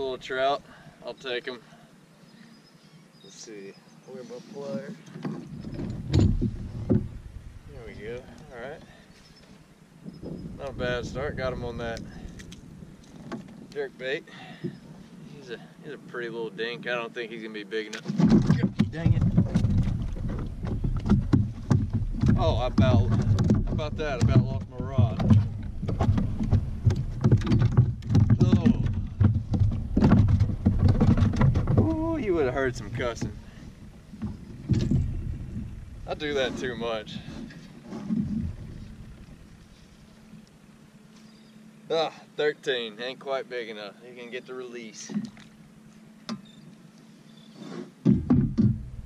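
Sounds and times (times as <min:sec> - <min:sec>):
heavy low thump: 0:05.6 - 0:08.4, 0:18.2 - 0:39.7, 0:48.0 - 0:49.0
low rumble: 0:05.6 - 0:08.9, 0:10.1 - 0:13.8, 0:18.5 - 0:40.5
fishing gear knocking: 0:18.0 - 0:36.8.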